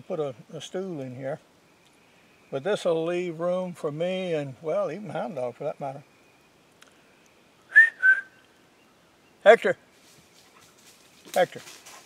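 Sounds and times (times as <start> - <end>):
man whistling: 7.7 - 8.4.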